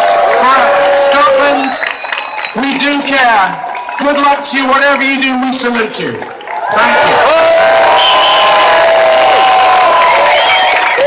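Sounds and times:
crowd cheering and shouting: 0.0 - 11.0
long held whoops: 7.2 - 11.0.

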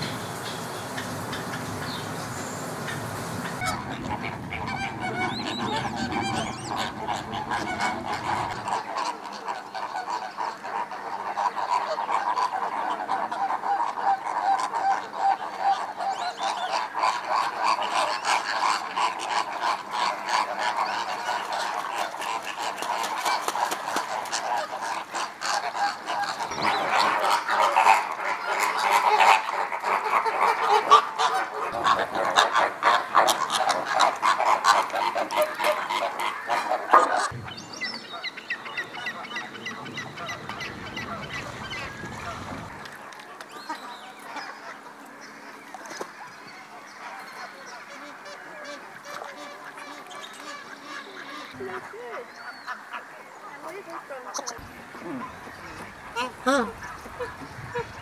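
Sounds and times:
flamingos honking: 0.0 - 58.0.

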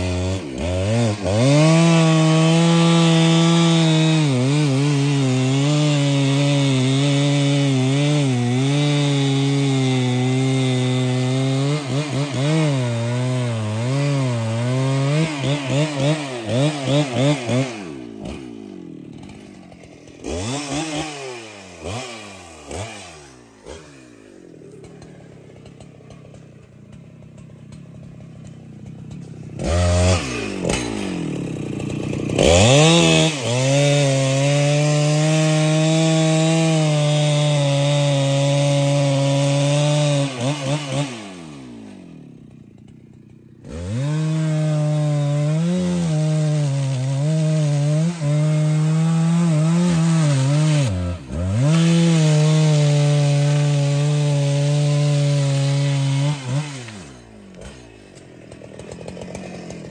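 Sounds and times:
chainsaw cutting wood: 0.0 - 59.9.

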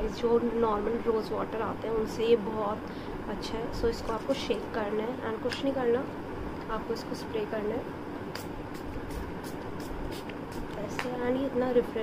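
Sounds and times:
steady low hum: 0.0 - 12.0
spray bottle hissing: 8.4 - 10.8.

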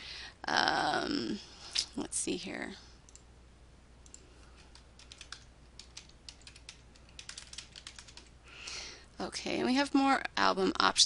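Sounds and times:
typing on computer keyboard: 4.0 - 8.3.

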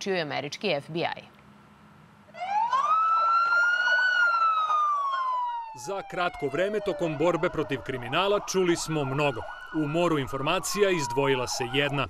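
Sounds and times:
police siren wailing: 2.3 - 12.0.

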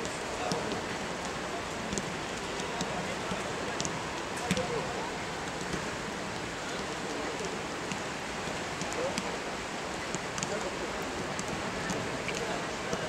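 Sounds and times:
faint distant voices: 0.0 - 13.0
steady rain: 0.0 - 13.0.

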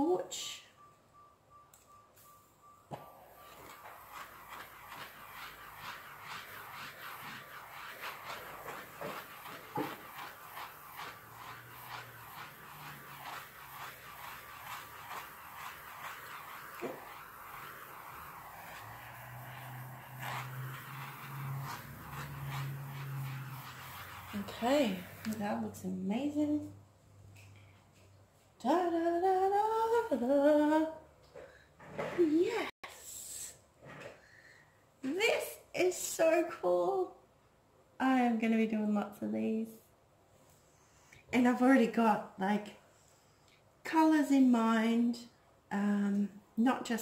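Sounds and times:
gas torch hissing: 3.3 - 25.4.

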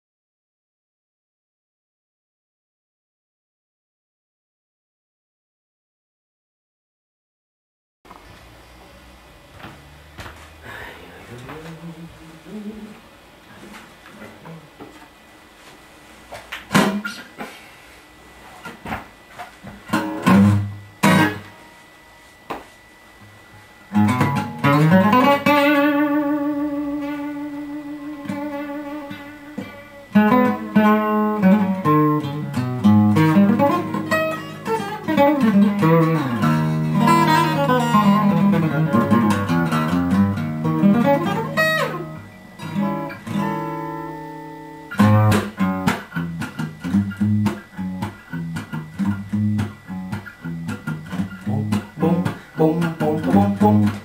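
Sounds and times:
acoustic guitar fingerpicked: 19.9 - 21.5, 23.9 - 54.0.

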